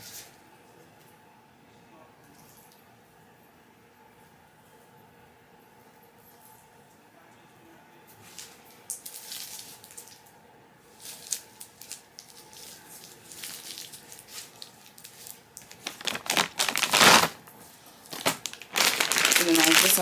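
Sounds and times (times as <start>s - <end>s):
plastic wrappers crinkling: 8.3s - 10.2s, 10.9s - 20.0s.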